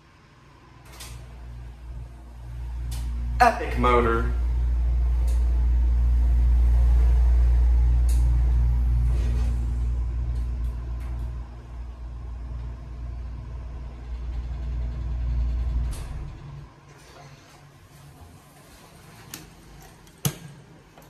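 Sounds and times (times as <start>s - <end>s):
elevator pump motor humming: 0.0s - 20.4s.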